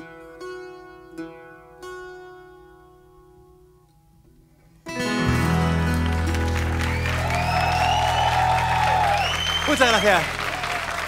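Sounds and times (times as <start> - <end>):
acoustic guitars and bass chord: 4.8 - 9.6
audience applause: 5.2 - 11.0
audience calling out: 7.1 - 11.0.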